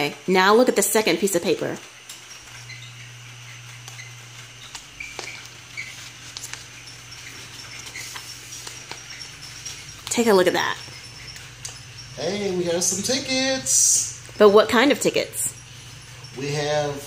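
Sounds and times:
paper rustling: 0:03.3 - 0:11.8.

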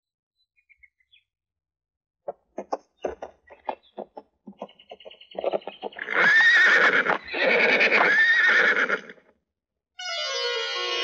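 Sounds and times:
horse hooves clip-clopping: 0:02.5 - 0:07.3
horse whinnying loudly: 0:06.0 - 0:09.2.

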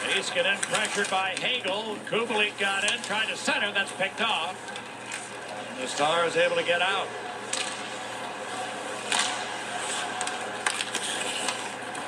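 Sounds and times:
skates sticks and puck clacking: 0:00.0 - 0:06.1, 0:07.4 - 0:12.0.

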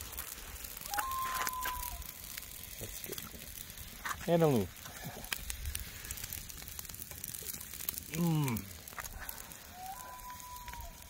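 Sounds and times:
campfire crackling and popping: 0:00.0 - 0:11.0.

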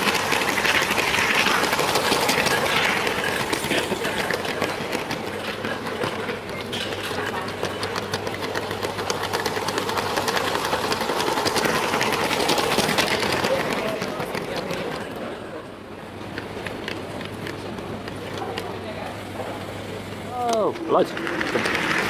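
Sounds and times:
wheels clattering over track: 0:00.0 - 0:22.0.

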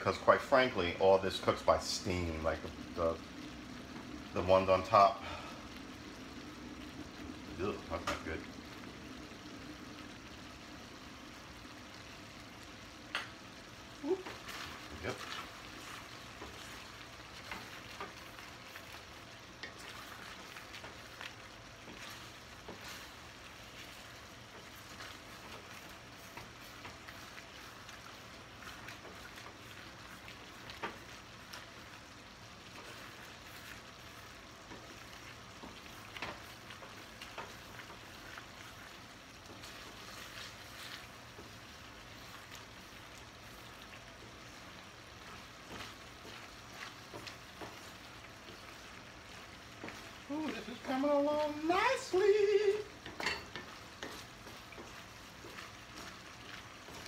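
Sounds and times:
food sizzling in a skillet: 0:00.0 - 0:57.0.

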